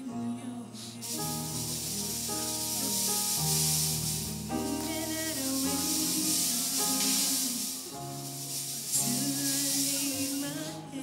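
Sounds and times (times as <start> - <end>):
fog machine hissing: 1.0 - 11.0.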